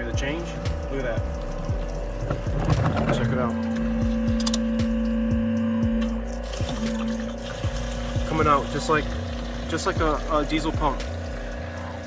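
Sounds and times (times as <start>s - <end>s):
diesel pouring into fuel can: 0.0s - 3.6s, 6.2s - 12.0s
electric pump whining: 0.0s - 12.0s.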